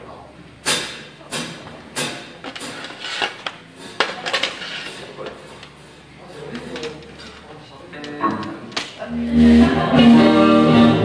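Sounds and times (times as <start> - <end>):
indistinct audience chatter: 0.0 - 11.0
drum kit hits: 0.6 - 2.8.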